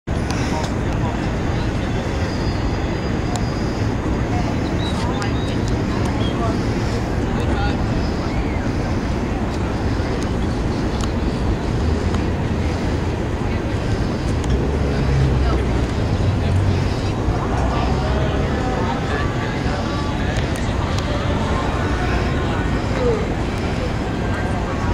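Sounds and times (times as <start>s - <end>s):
people chattering: 0.1s - 24.9s
wind rumbling on microphone: 0.1s - 24.9s.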